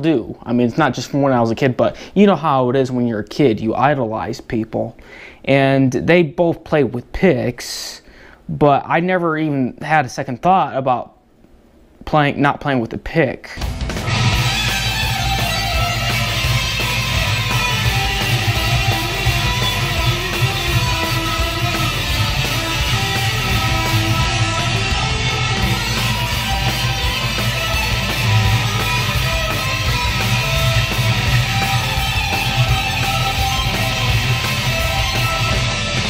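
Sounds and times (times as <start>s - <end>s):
backing track with bass and drums: 13.6s - 36.0s
fast electric guitar: 13.6s - 36.0s.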